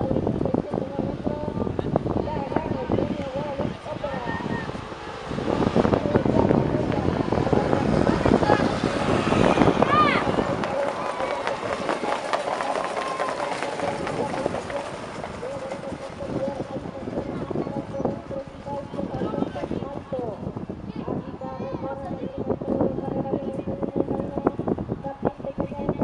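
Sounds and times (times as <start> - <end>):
hoofbeats and wheels clattering: 4.7 - 19.8.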